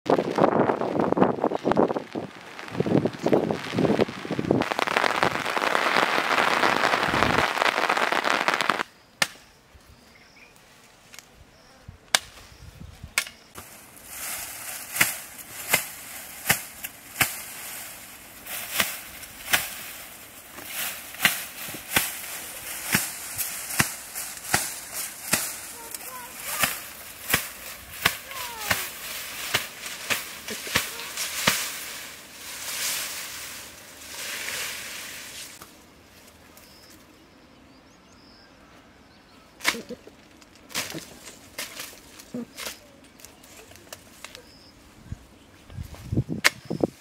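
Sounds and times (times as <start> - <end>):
leafy branches rustling: 0.1 - 8.8, 12.1 - 37.2, 39.6 - 47.0.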